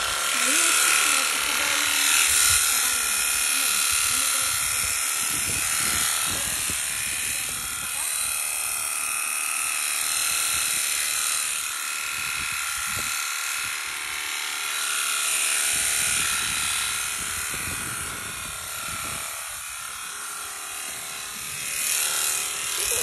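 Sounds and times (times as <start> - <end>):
electric shears motor whine: 0.0 - 23.0
shears clipping through fleece: 0.0 - 23.0.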